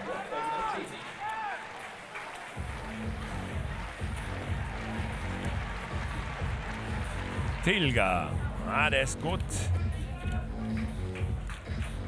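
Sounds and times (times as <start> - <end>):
music over public address: 0.0 - 12.0
stadium crowd noise: 0.0 - 12.0
steady low beat: 2.6 - 12.0.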